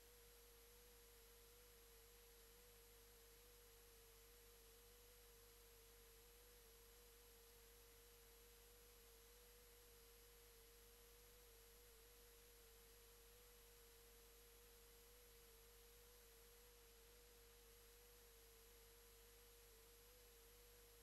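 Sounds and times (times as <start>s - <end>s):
faint steady tone: 0.0s - 21.0s.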